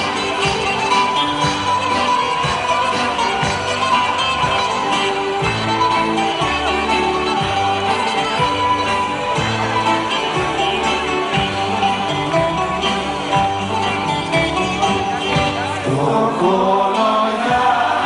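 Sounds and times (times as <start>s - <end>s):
plucked-string melody: 0.0s - 18.0s
rhythmic bass: 0.0s - 18.0s.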